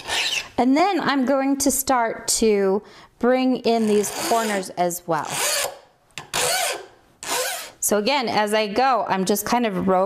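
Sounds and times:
hand file rasping on metal: 0:00.0 - 0:00.5, 0:03.9 - 0:07.8.

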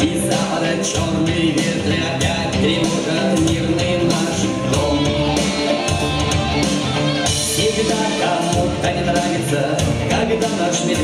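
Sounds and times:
guitar-led band playing: 0:00.0 - 0:11.0.

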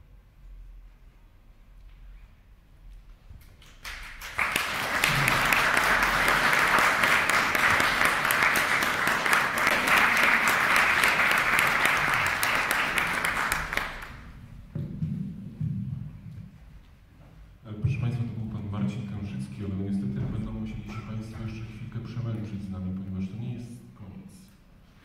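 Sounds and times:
audience applauding: 0:03.6 - 0:14.3.

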